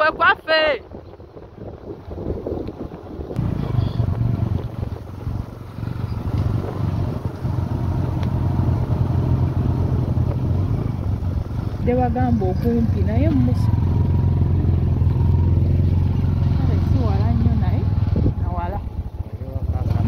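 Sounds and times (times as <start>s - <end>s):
wind noise on microphone: 0.0s - 13.5s, 16.8s - 19.2s
motorcycle engine running: 3.3s - 20.0s.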